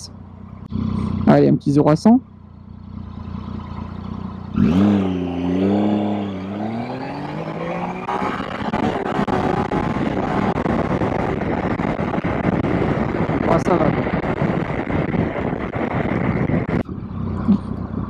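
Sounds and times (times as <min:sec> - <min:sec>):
motorcycle engine revving: 0:00.0 - 0:18.0
wind rush: 0:05.6 - 0:18.0.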